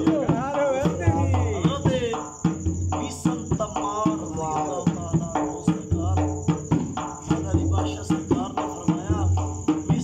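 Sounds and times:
barrel drum beaten: 0.0s - 10.0s
crickets chirring: 0.0s - 10.0s.

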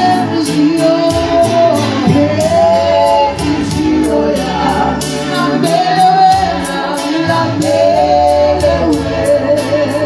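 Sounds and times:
choir singing gospel: 0.0s - 10.0s.

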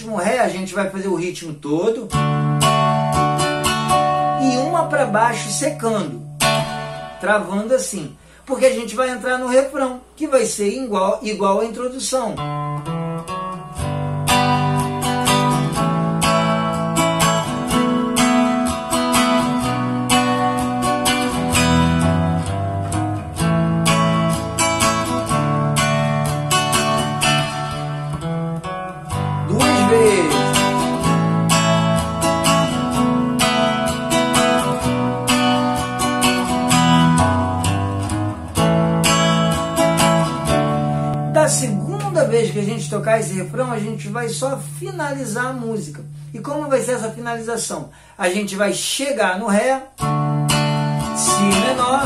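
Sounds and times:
nylon-string guitar strumming chords: 2.0s - 8.4s, 12.4s - 48.1s, 49.9s - 52.0s.

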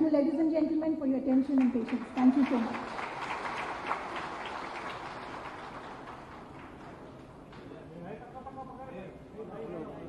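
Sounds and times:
audience applause: 1.7s - 7.4s.

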